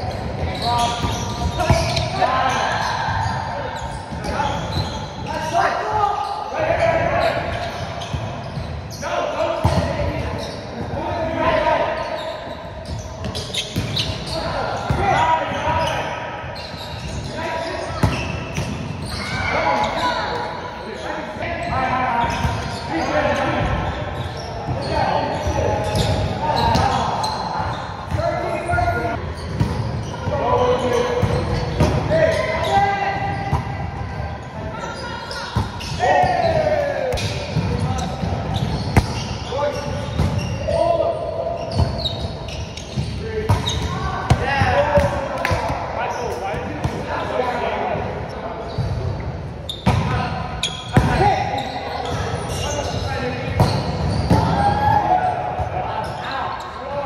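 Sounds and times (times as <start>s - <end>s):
players calling and talking: 0.0s - 57.0s.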